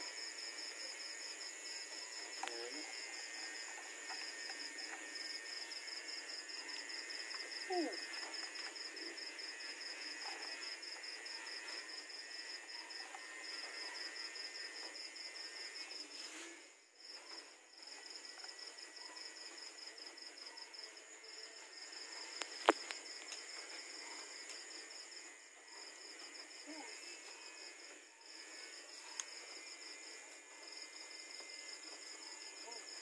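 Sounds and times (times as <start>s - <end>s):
night insects trilling: 0.0s - 33.0s.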